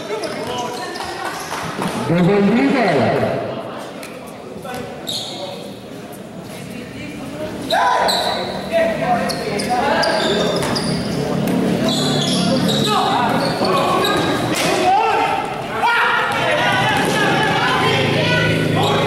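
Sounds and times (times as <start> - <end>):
people shouting in gym: 7.6 - 8.6, 12.0 - 19.0.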